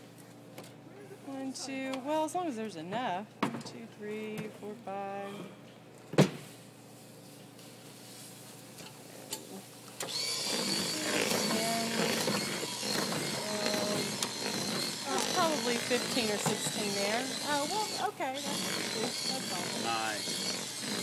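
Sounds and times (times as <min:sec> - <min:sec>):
electric hand mixer whining: 0:10.0 - 0:21.0.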